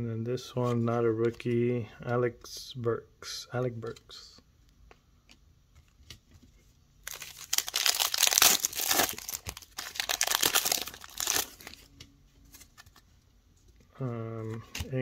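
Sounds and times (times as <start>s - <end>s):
foil wrapper tearing and crinkling: 7.0s - 11.8s.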